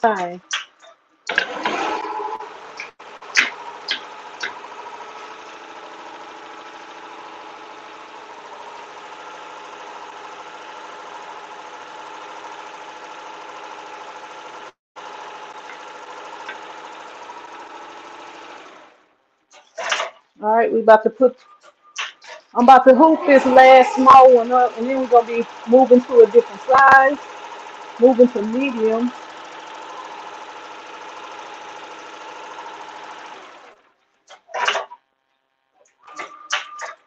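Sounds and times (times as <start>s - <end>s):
embroidery machine stitching: 1.3s - 20.0s, 22.2s - 33.9s.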